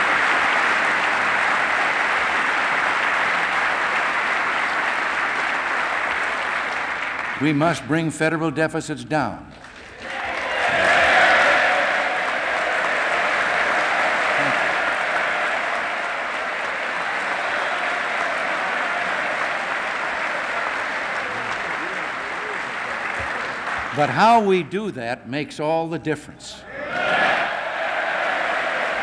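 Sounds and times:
large audience applauding: 0.0 - 7.8, 9.5 - 24.7, 26.9 - 29.0.

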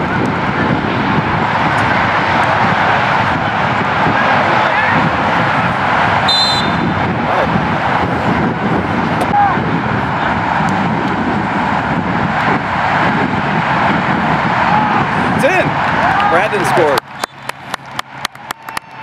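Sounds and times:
wind rush on microphone: 0.0 - 19.0
short high whistle blast: 6.3 - 6.9.

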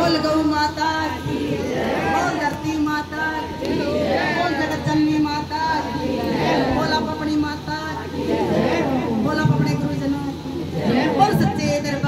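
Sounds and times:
woman speaking into microphone: 0.0 - 12.0
women chattering: 0.0 - 12.0.

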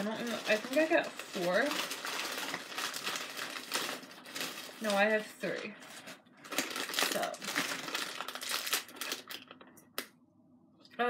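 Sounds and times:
plastic packaging crinkling: 0.0 - 10.1.

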